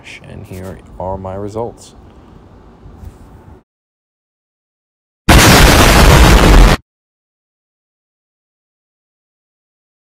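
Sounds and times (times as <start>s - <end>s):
loud explosion: 5.3s - 6.8s.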